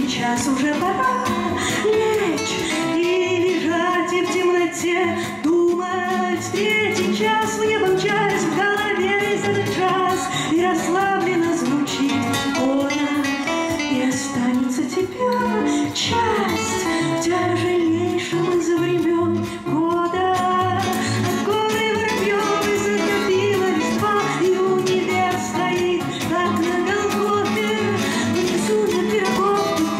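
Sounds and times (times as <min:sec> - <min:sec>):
acoustic guitars playing: 0:00.0 - 0:29.9
cajon beat: 0:00.0 - 0:29.9.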